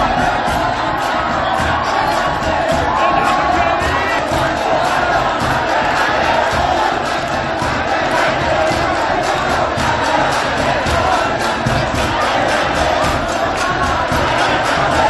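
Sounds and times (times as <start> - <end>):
crowd shouting and cheering: 0.0 - 15.0
music: 0.0 - 15.0.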